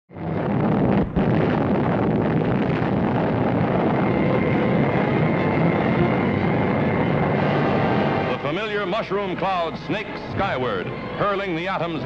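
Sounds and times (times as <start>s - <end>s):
explosion rumbling roar: 0.1s - 11.2s.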